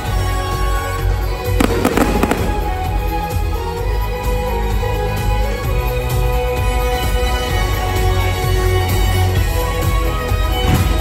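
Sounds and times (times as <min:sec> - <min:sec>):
fireworks crackling and popping: 0:01.6 - 0:03.6.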